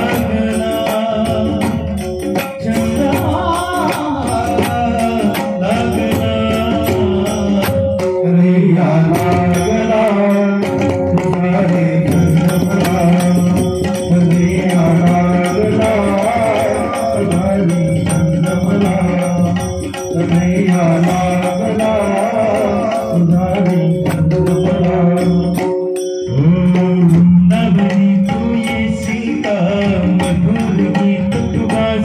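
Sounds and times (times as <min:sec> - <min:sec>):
drum strokes: 0:00.0 - 0:32.0
hand cymbals: 0:00.0 - 0:32.0
men singing devotional folk song: 0:00.0 - 0:32.0.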